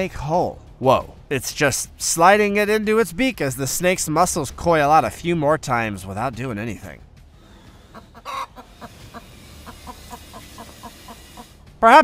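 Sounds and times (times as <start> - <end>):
hen clucking: 7.4 - 11.6.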